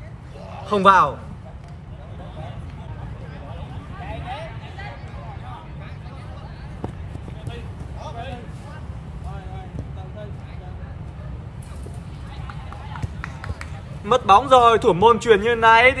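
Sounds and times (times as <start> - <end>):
ball being kicked: 6.8 - 7.9.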